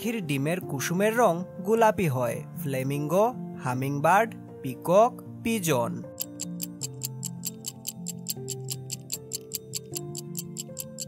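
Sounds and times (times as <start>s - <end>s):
soft background music: 0.0s - 11.0s
stopwatch ticking: 6.2s - 11.0s.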